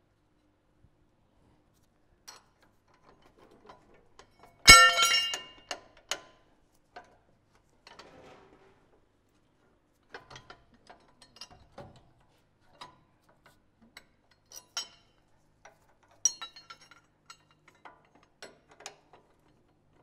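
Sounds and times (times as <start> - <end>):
steel parts clinking: 4.7 - 5.7.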